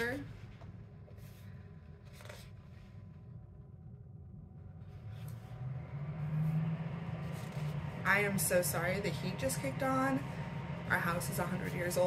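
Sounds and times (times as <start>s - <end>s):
heating system hum: 0.0s - 12.0s
paper pages rustling: 0.5s - 3.1s, 7.2s - 7.8s.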